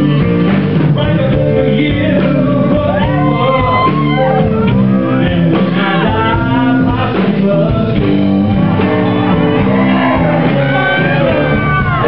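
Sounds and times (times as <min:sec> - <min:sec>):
live rock band playing blues: 0:00.0 - 0:12.0.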